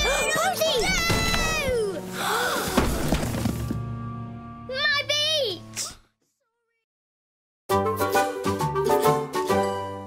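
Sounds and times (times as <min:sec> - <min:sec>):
cardboard crashing on floor: 0:02.6 - 0:03.8.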